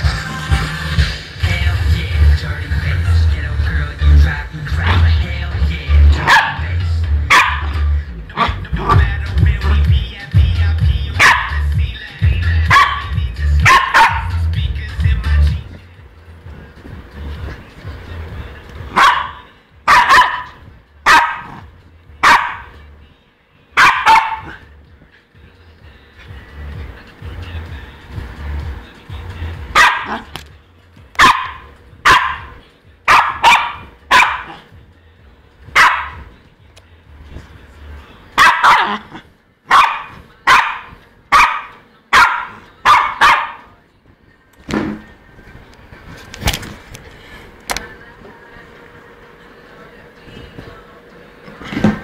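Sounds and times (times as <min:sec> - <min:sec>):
faint music: 0:00.0 - 0:52.0
dog barking excitedly: 0:06.1 - 0:06.7, 0:07.3 - 0:09.8, 0:11.1 - 0:11.6, 0:12.6 - 0:14.4, 0:18.9 - 0:22.8, 0:23.8 - 0:24.7, 0:29.7 - 0:30.3, 0:31.2 - 0:34.7, 0:35.7 - 0:36.3, 0:38.4 - 0:43.7.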